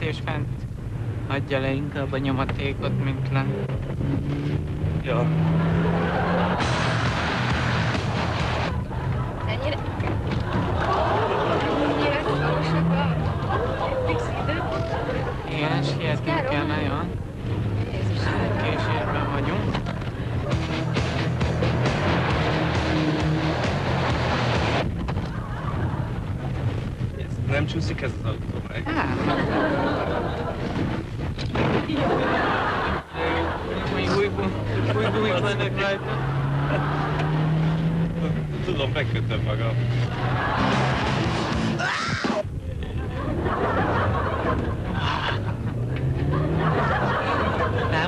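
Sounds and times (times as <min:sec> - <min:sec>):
car engine and road noise: 0:00.0 - 0:48.0
background music: 0:04.0 - 0:10.2, 0:11.1 - 0:24.9, 0:39.8 - 0:42.0.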